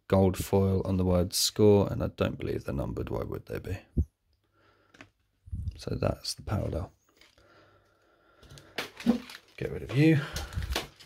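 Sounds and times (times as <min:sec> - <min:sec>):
handling cards on a table: 0:04.8 - 0:05.4, 0:07.0 - 0:07.5, 0:08.4 - 0:11.0.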